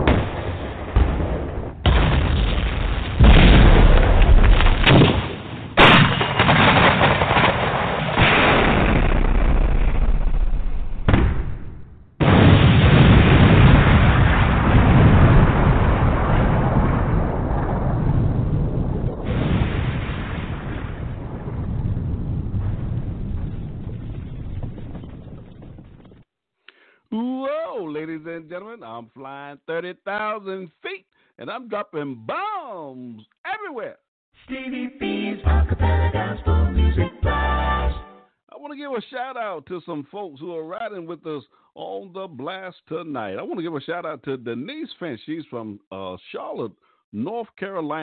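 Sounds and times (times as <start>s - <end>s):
bombs exploding: 0.0s - 26.3s.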